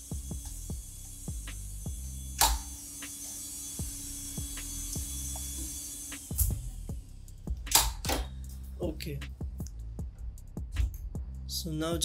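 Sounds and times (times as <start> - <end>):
music with bass and beat: 0.0 - 2.4, 3.8 - 12.0.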